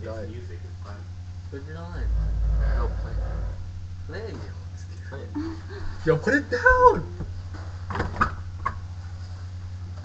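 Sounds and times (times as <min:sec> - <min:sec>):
low rumble: 0:01.2 - 0:04.8.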